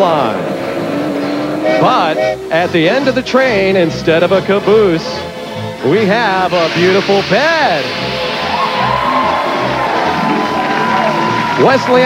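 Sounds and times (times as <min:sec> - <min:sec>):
game show music: 0:00.0 - 0:12.0
studio audience cheering: 0:06.2 - 0:12.0.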